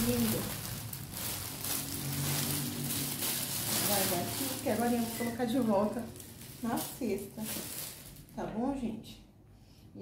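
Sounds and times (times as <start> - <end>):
cellophane crinkling: 0.0 - 8.4.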